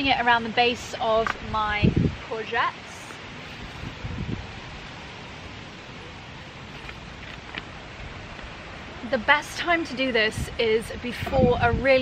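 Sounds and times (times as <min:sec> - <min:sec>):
wind rustling foliage: 0:00.0 - 0:12.0.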